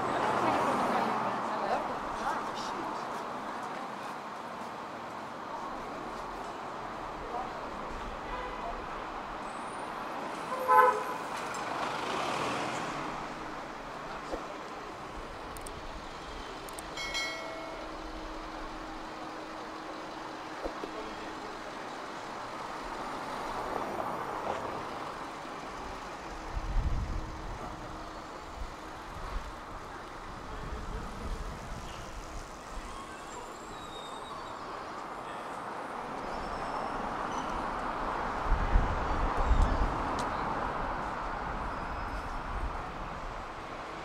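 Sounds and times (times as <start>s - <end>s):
city street traffic hum: 0.0s - 44.0s.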